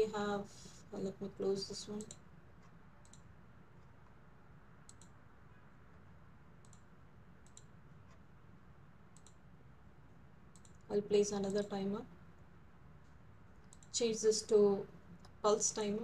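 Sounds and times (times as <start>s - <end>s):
computer mouse clicks: 2.0s - 4.0s, 4.8s - 5.2s, 6.6s - 8.2s, 9.1s - 9.4s, 10.5s - 11.8s, 13.6s - 14.0s.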